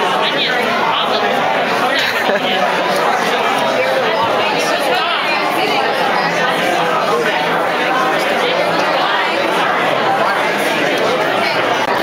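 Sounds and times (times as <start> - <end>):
hubbub of overlapping conversation: 0.0 - 12.0.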